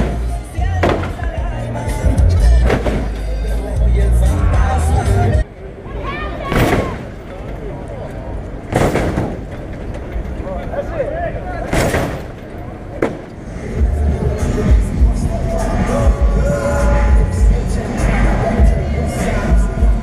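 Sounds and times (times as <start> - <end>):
car slamming down bangs: 0.0 - 1.5, 2.6 - 3.3, 6.5 - 7.4, 8.7 - 9.9, 11.6 - 13.4
heavy bass music: 0.0 - 5.4, 13.4 - 20.0
crowd voices: 0.0 - 20.0.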